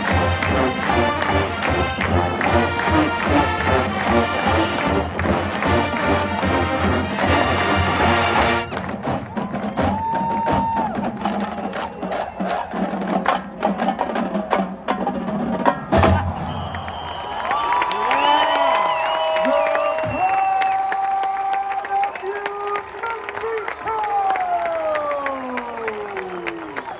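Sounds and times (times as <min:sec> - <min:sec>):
crowd cheering: 0:00.0 - 0:13.0, 0:15.9 - 0:26.9
marching band drums: 0:00.0 - 0:17.0
whoops and whistles: 0:16.3 - 0:22.6, 0:24.6 - 0:26.9.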